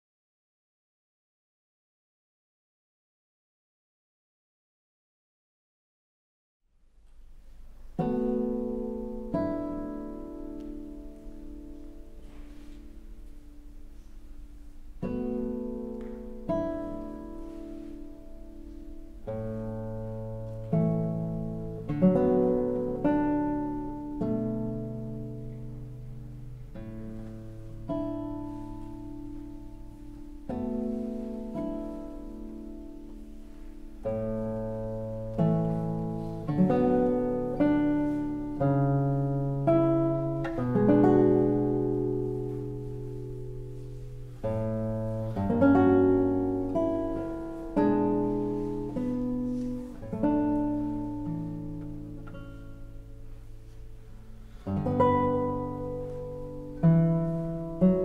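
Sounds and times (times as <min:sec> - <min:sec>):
classical guitar playing: 0:07.0 - 0:58.0.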